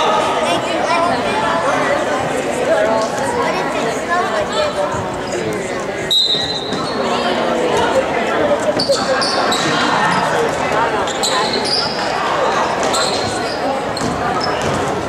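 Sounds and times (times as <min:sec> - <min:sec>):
spectators chatting: 0:00.0 - 0:15.0
sneakers squeaking on floor: 0:06.0 - 0:07.4, 0:08.7 - 0:15.0
referee whistle blast: 0:06.1 - 0:06.8.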